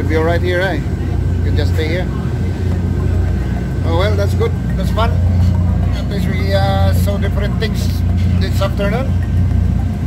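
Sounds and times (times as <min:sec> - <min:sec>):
boat engine droning: 0:00.0 - 0:10.0
faint steady whine: 0:00.0 - 0:10.0.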